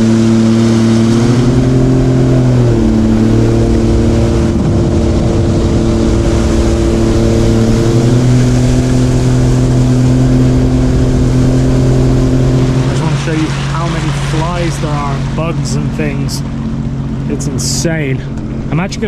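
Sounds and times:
jet ski engine running: 0.0s - 19.0s
water rushing under hull: 0.0s - 19.0s.

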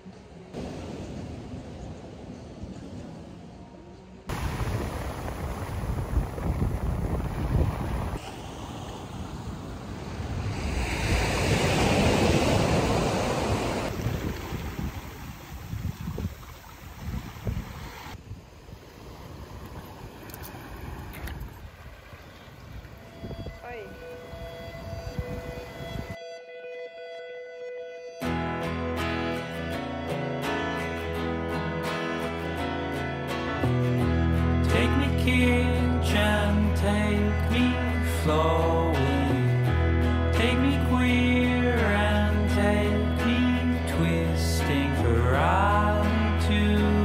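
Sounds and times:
waves washing onto stony beach: 4.3s - 18.2s
wind buffeting microphone: 4.3s - 26.2s
guitar music: 23.4s - 47.0s.

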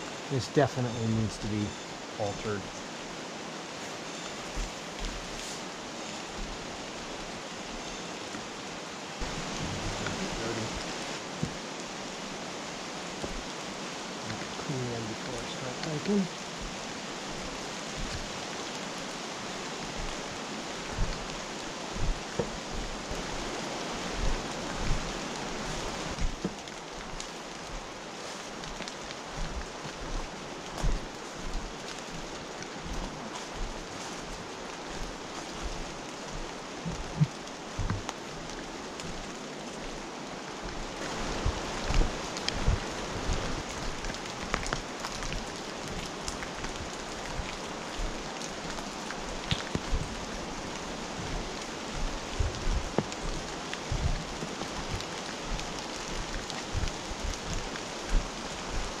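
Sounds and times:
steady rushing hiss: 0.0s - 59.0s
footsteps on leafy trail: 3.8s - 8.1s, 16.3s - 59.0s.

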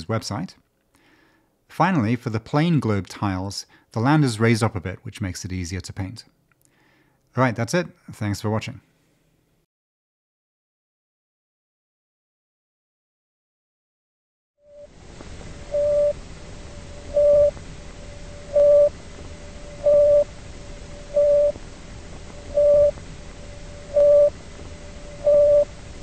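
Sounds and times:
radio hiss: 14.8s - 26.0s
short radio beeps: 22.5s - 23.0s, 23.9s - 24.4s.

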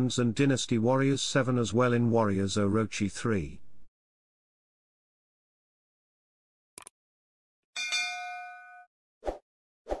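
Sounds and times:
notification bell ding: 7.8s - 8.9s.

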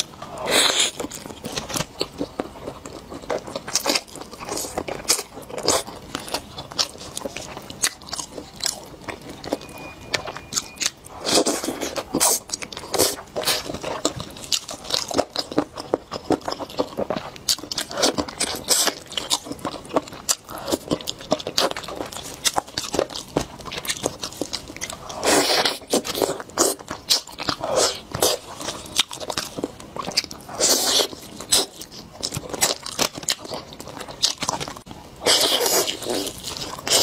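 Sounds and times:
person chewing and biting: 0.0s - 37.0s.

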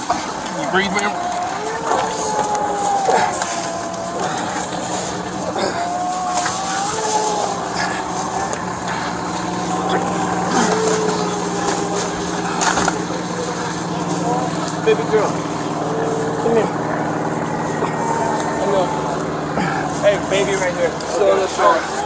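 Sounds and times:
engine hum: 0.0s - 22.0s
person wailing: 0.5s - 13.6s, 15.8s - 17.0s, 17.6s - 19.9s.

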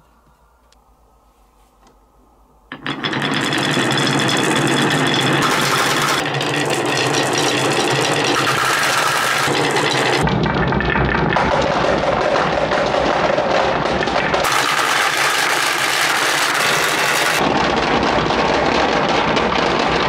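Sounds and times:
marbles rattling down wooden run: 2.7s - 17.4s.

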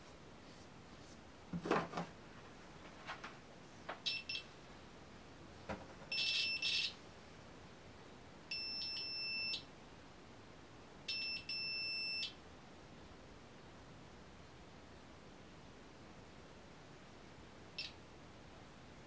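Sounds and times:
multimeter continuity beeps: 4.0s - 4.5s, 6.1s - 7.0s, 8.5s - 9.7s, 11.1s - 12.4s, 17.8s - 18.0s.

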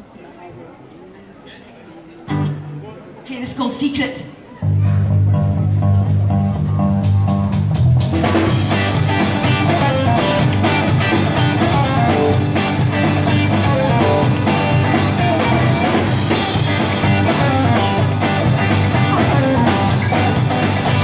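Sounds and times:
rock band playing live: 4.6s - 21.0s
low bass notes: 4.7s - 21.0s
repeating guitar figure: 8.7s - 21.0s.

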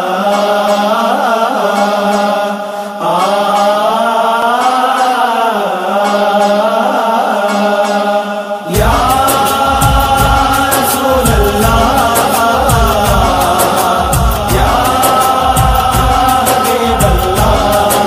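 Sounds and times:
wordless chanted notes: 0.0s - 18.0s
steady percussion beat: 8.7s - 18.0s.

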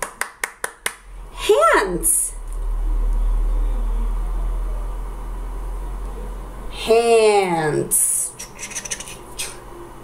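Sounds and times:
steady low hum: 0.1s - 10.0s.

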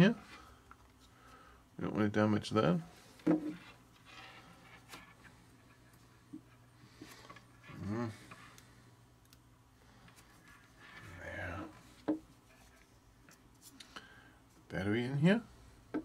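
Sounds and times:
murmured voice: 7.7s - 8.3s.

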